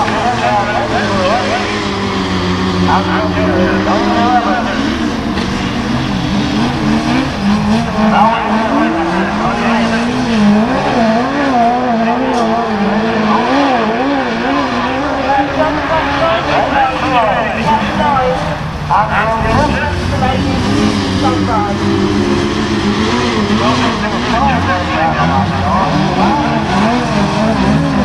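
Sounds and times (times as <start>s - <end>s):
racing buggy engines revving: 0.0s - 28.0s.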